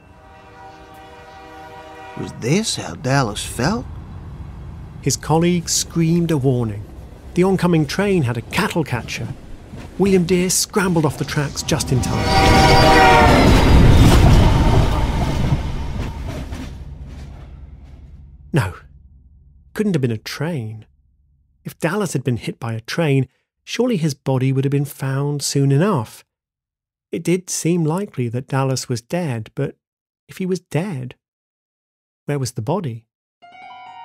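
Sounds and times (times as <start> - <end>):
train horn chord: 0.0 - 5.0, 11.2 - 18.5.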